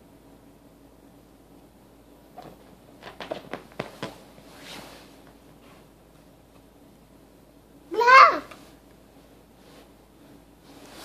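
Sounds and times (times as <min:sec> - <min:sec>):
soft clicks and rustles on sofa: 0:02.3 - 0:06.7.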